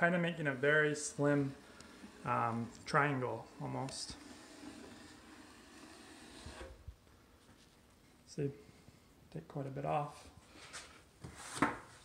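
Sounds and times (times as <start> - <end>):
taping knife scraping wall: 0.6 - 6.8.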